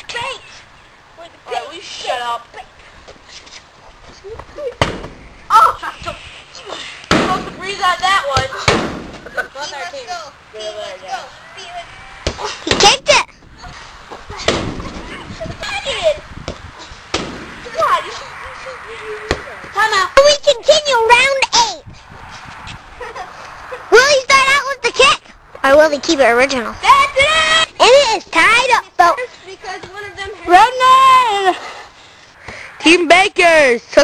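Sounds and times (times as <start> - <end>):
boys shouting and talking: 0.0 - 34.0
sharp thumps: 4.4 - 5.5, 7.0 - 9.4, 12.2 - 13.3, 14.4 - 15.2, 16.4 - 17.9.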